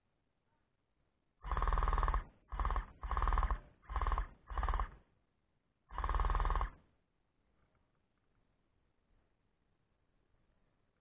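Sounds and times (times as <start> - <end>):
toy rifle full-auto bursts: 1.4 - 5.0, 5.9 - 6.8.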